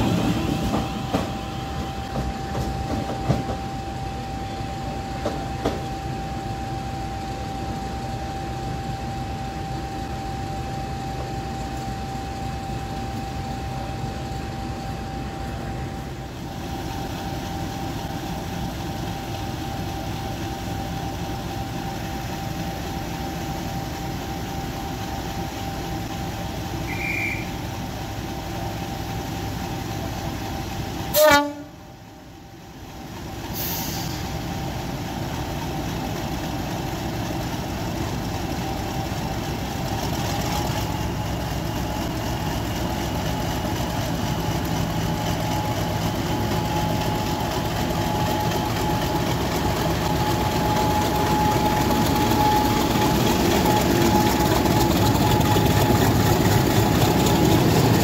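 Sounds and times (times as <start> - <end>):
steady whine: 0.0 - 33.5, 34.1 - 58.0
diesel locomotive idling: 0.0 - 58.0
short high whistle: 26.8 - 27.6.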